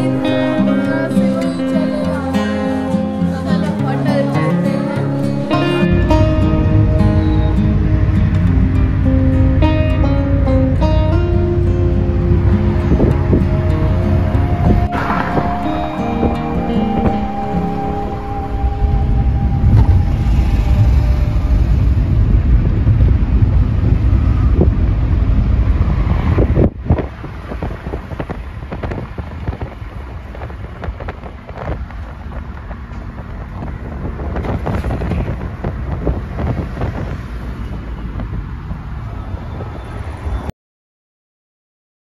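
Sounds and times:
car wind and road noise: 0.0 - 40.5.

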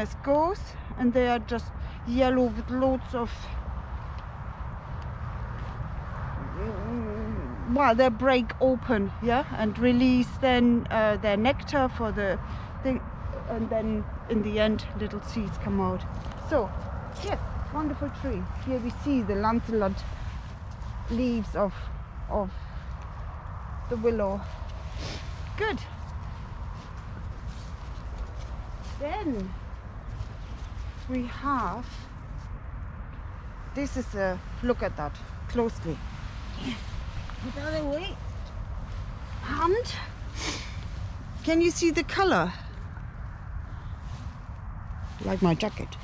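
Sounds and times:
rustling leaves: 0.0 - 46.0
wind buffeting microphone: 0.0 - 46.0.

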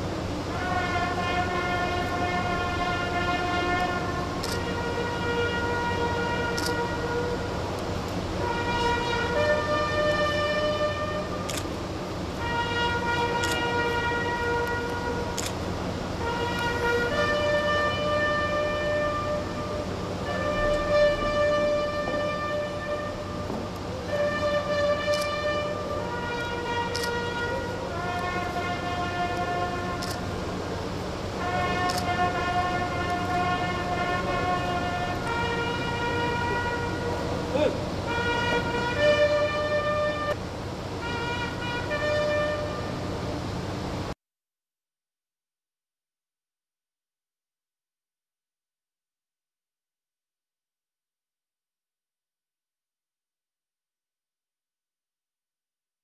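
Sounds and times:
steady low hum: 0.0 - 44.2
bugle long held note: 0.1 - 44.1
slow lament on wind instrument: 0.4 - 7.8, 8.4 - 11.8, 12.4 - 40.4, 41.0 - 43.4.

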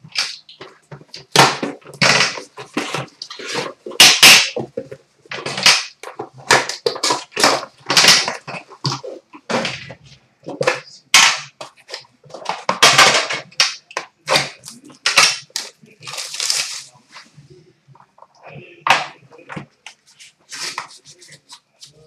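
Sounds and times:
plastic shrink wrap tearing: 14.3 - 17.0.

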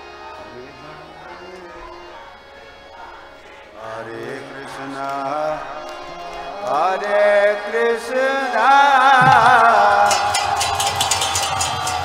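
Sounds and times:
drum beats: 9.2 - 12.0
hand cymbals struck: 9.2 - 12.0.

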